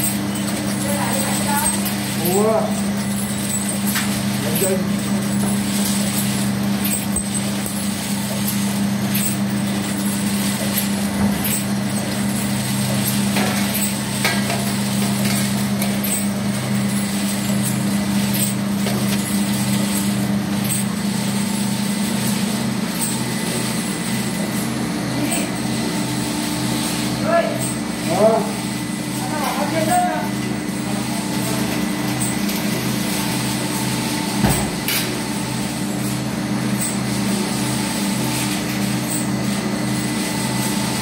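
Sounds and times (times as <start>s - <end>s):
machine humming: 0.0s - 41.0s.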